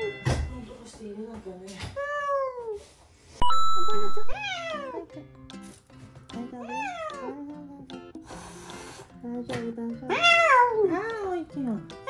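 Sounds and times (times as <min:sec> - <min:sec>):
cat meowing: 0:04.3 - 0:05.1, 0:06.6 - 0:07.5, 0:10.1 - 0:10.8.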